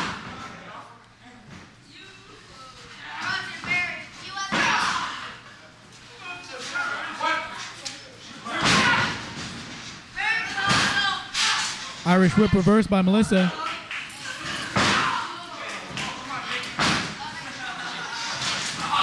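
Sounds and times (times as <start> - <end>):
people shouting: 8.5 - 9.3.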